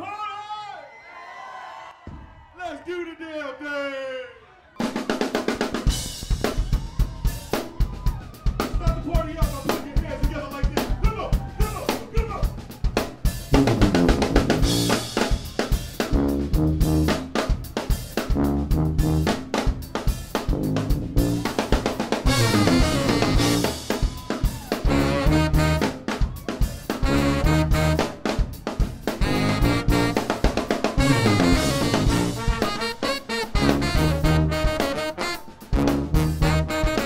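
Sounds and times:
drum kit groove: 0:04.8 - 0:37.0
brass with trombones: 0:13.5 - 0:26.2, 0:26.8 - 0:37.0.

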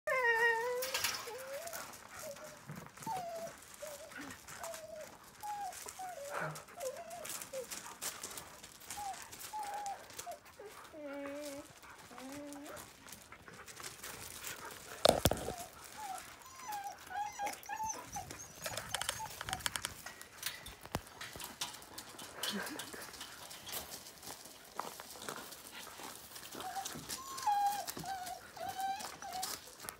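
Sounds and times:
dog whining: 0:00.1 - 0:07.7, 0:08.9 - 0:12.8, 0:15.0 - 0:19.9, 0:26.6 - 0:29.6
scuffs and clicks: 0:01.2 - 0:29.9.

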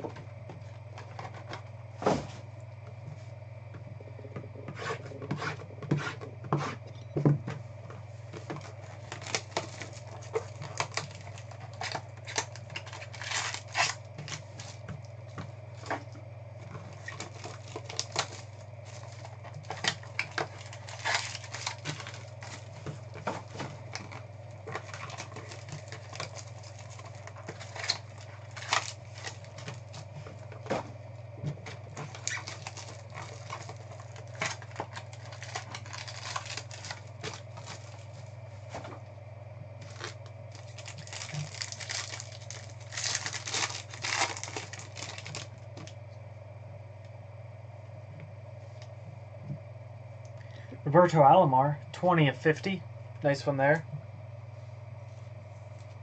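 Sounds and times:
steady low hum: 0:00.0 - 0:56.0
foil wrappers crinkling and tearing: 0:08.2 - 0:30.8, 0:31.6 - 0:38.3, 0:39.8 - 0:46.0.

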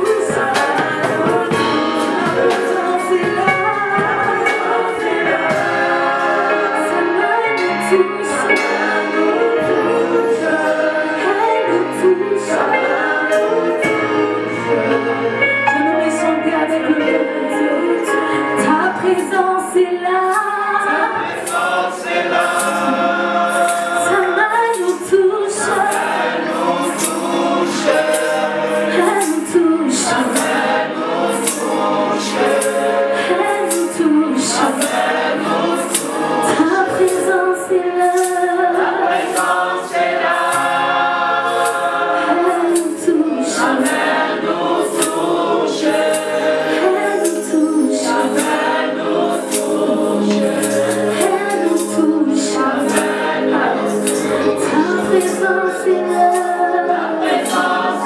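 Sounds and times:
woman singing: 0:00.0 - 0:05.7, 0:06.5 - 0:21.3, 0:24.1 - 0:26.0, 0:29.0 - 0:30.5, 0:33.2 - 0:35.0, 0:36.5 - 0:39.0, 0:42.2 - 0:44.0, 0:46.6 - 0:48.7, 0:49.4 - 0:58.0
high percussion beat: 0:00.0 - 0:15.1, 0:21.2 - 0:58.0
group of singers: 0:00.0 - 0:58.0
keyboard: 0:00.0 - 0:58.0.

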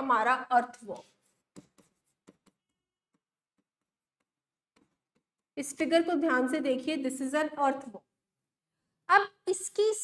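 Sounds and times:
pen ticking on whiteboard screen: 0:00.7 - 0:05.7.

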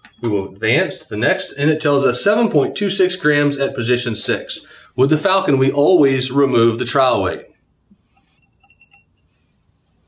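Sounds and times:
light metallic clinks: 0:08.1 - 0:09.6.

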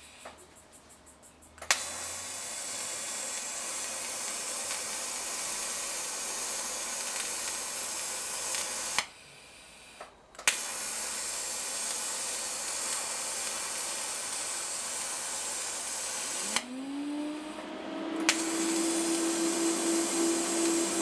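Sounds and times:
welding arc hissing: 0:01.7 - 0:09.1, 0:10.5 - 0:16.7, 0:18.2 - 0:21.0
welder click: 0:08.4 - 0:09.1, 0:10.0 - 0:10.9, 0:11.5 - 0:16.8, 0:18.2 - 0:21.0.

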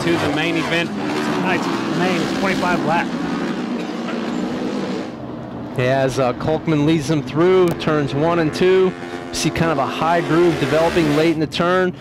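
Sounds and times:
racing motorcycles engine drone: 0:00.0 - 0:05.6, 0:06.3 - 0:11.5.

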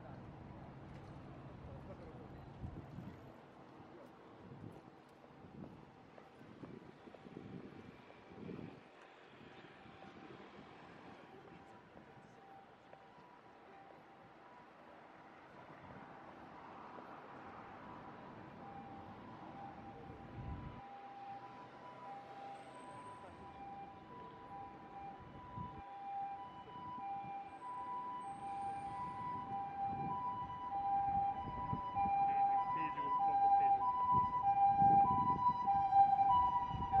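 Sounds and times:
street traffic: 0:00.0 - 0:37.0
ambulance siren two-tone: 0:17.8 - 0:37.0.

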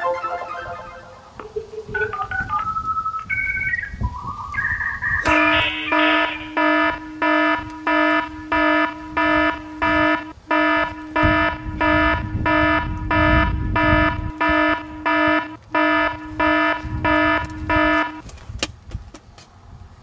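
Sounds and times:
electronic alarm buzzer beeping: 0:05.2 - 0:18.2.

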